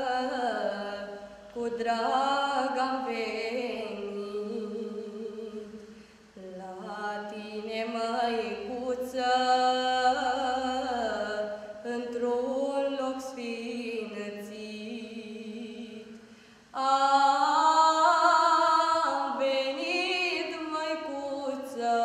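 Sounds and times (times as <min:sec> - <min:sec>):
girl singing a hymn unaccompanied: 0:00.0 - 0:22.0
singer breathing: 0:05.8 - 0:06.3, 0:16.2 - 0:16.7.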